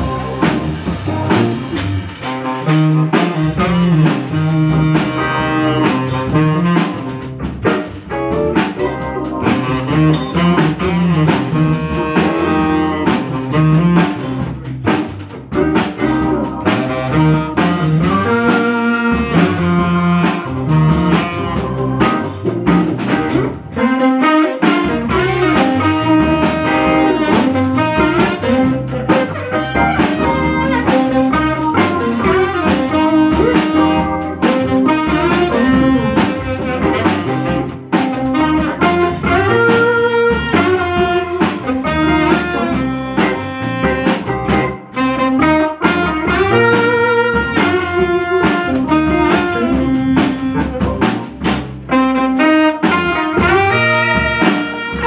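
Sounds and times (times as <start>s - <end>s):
organ: 0.0s - 52.0s
drum kit: 0.0s - 55.0s
electric bass: 0.0s - 55.0s
electric guitar: 0.0s - 55.0s
saxophone: 0.0s - 55.0s.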